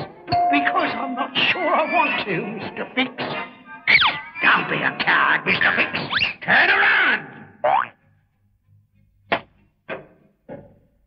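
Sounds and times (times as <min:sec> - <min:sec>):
cartoon boings: 0:07.6 - 0:08.0.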